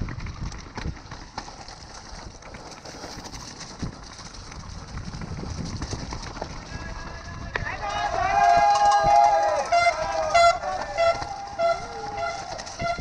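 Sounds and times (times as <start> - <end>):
mountain bike rattling: 0.0 - 13.0
tyre and wind rush: 0.0 - 13.0
spectators shouting: 6.7 - 13.0
long loud yell: 6.8 - 12.5.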